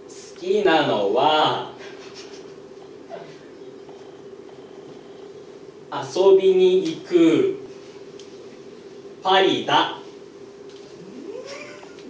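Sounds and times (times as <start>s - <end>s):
faint steady hum: 0.0s - 12.0s
person going hm: 10.9s - 12.0s.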